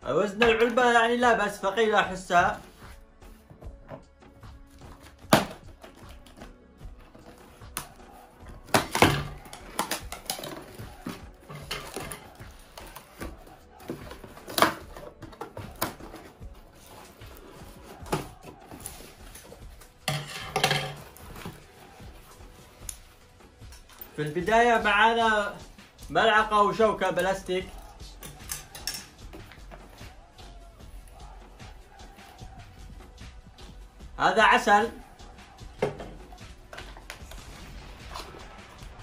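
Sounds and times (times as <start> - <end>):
faint music: 0.0 - 39.0
paper rustling: 2.4 - 20.1.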